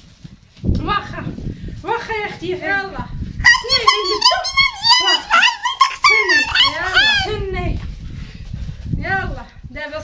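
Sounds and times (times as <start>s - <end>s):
woman wailing: 3.5s - 7.4s.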